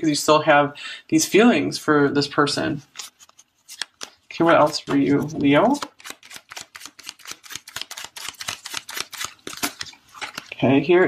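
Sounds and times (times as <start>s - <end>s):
cards being shuffled: 2.8s - 10.6s.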